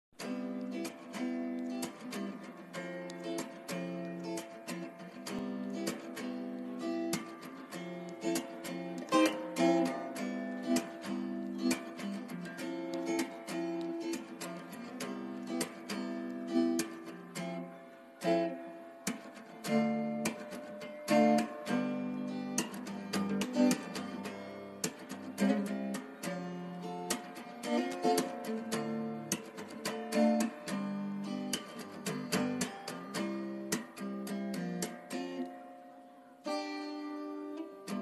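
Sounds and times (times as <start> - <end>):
acoustic guitar strumming chords: 0.2 - 38.0.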